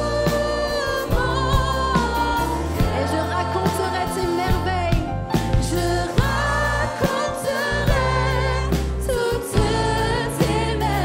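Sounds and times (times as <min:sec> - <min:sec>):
drums: 0:00.0 - 0:11.0
voices singing together: 0:00.0 - 0:11.0.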